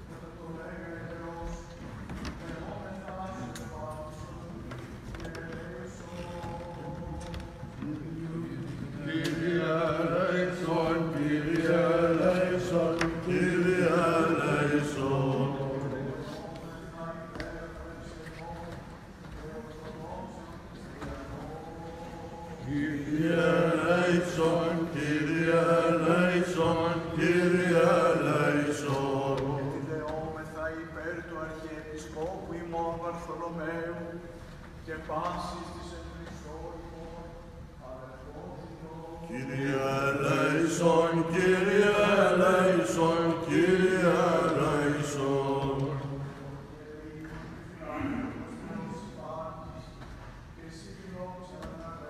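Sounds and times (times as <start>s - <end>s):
voices chanting long notes: 9.1s - 16.1s, 22.6s - 29.9s, 39.3s - 46.4s.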